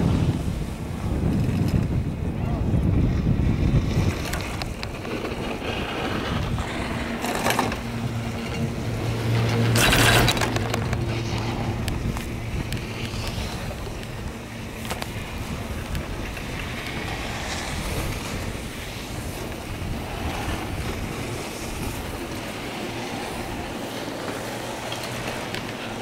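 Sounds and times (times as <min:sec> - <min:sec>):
haul rope over sheave wheels: 0:00.0 - 0:26.0
wind buffeting microphone: 0:00.0 - 0:26.0.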